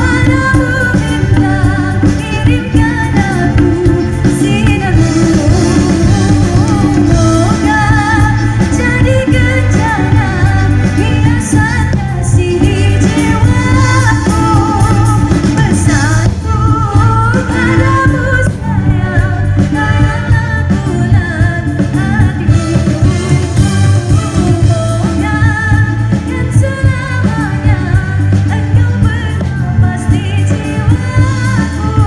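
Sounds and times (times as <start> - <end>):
live band playing pop song: 0.0 - 32.0
person singing: 0.0 - 32.0.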